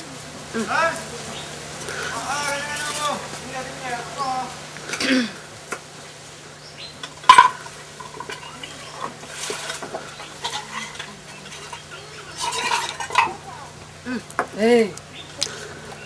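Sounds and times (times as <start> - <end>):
utensils clinking on cookware: 7.0 - 13.5.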